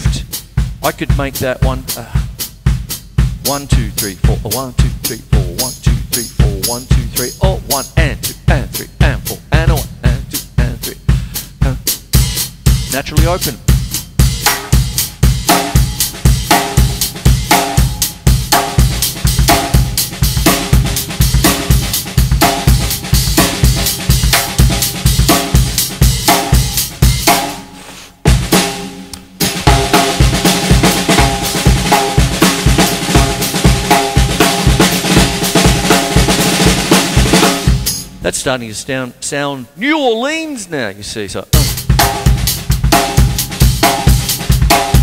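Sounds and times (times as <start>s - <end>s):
open hi-hat: 0.0s - 38.4s
drum kit funk groove: 0.0s - 38.5s, 41.4s - 45.0s.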